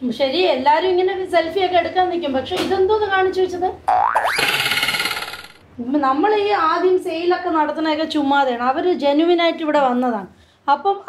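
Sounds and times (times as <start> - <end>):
cartoon boing sound effect: 3.9 - 5.5.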